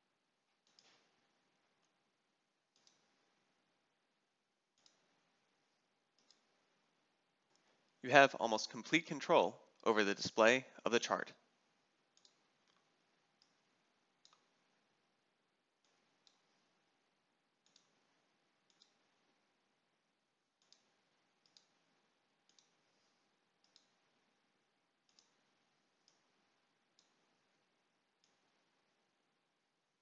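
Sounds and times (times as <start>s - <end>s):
faint computer mouse clicks: 0.6s - 1.1s, 2.7s - 3.0s, 6.2s - 6.5s, 12.2s - 13.6s, 14.2s - 14.5s, 17.6s - 18.0s, 18.7s - 19.0s, 20.6s - 21.8s, 22.5s - 24.0s, 25.0s - 26.3s.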